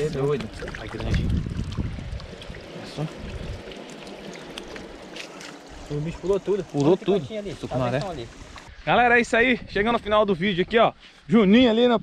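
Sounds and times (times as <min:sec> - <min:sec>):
small water splashes: 0:00.0 - 0:08.7
water draining through sieve net: 0:00.0 - 0:08.7.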